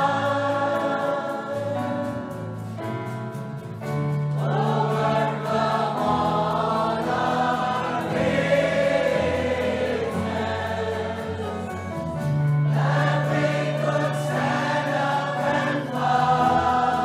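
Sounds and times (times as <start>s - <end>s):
choir singing gospel song: 0.0s - 3.4s, 4.0s - 17.0s
musical accompaniment: 0.0s - 17.0s.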